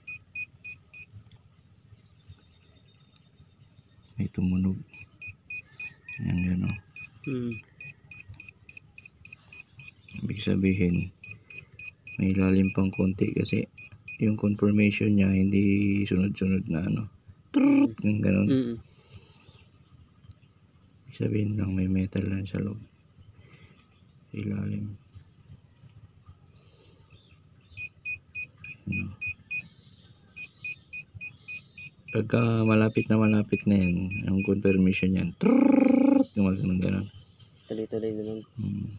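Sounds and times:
metal detector beeps: 0.0 - 1.1, 4.9 - 14.5, 27.8 - 29.7, 30.4 - 35.2
faint high background tone: 0.0 - 38.9
metal detector short high beeps: 30.4 - 34.8.

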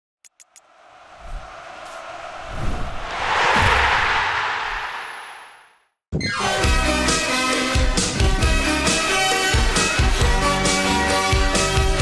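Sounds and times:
whooshing swell: 0.5 - 5.8
low rumble: 0.6 - 5.7.

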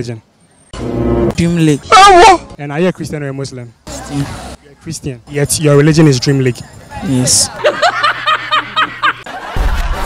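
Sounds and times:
hearty laughter: 7.5 - 10.0.

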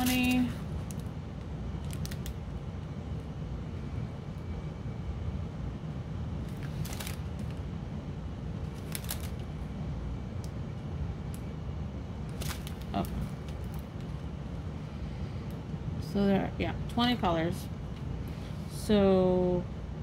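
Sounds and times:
plastic bags crinkling: 0.0 - 1.1, 1.8 - 2.4, 6.5 - 7.6, 8.7 - 9.4, 12.3 - 14.1
steady low hum: 0.0 - 20.0.

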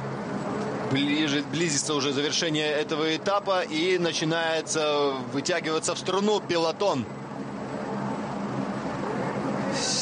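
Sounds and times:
aircraft engine drone: 0.0 - 10.0.

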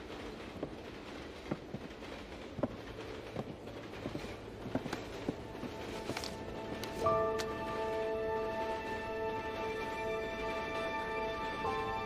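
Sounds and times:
soft irregular knocks: 0.0 - 7.7
train carriage rumble: 0.0 - 12.0.

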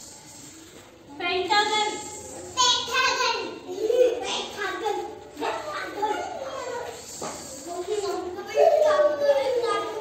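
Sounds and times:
young children speaking: 1.5 - 10.0.

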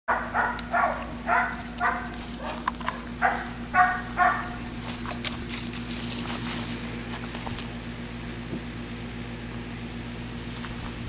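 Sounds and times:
puppy yapping: 0.1 - 5.2
rustling and scuffling: 0.4 - 8.8.

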